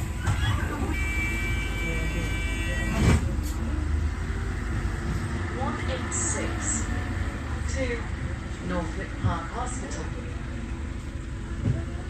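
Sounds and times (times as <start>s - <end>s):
vehicle rumble heard from inside: 0.0s - 12.0s.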